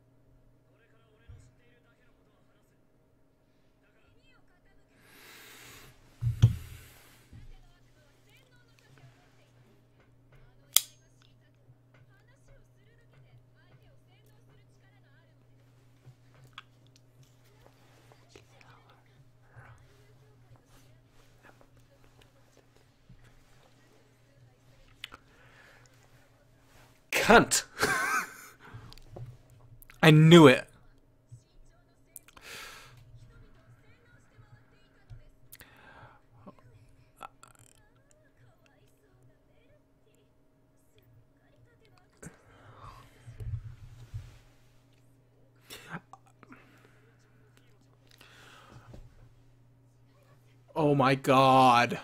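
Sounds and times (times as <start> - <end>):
low steady hum: 0.0 - 52.0
faint whispering voice: 17.4 - 25.3.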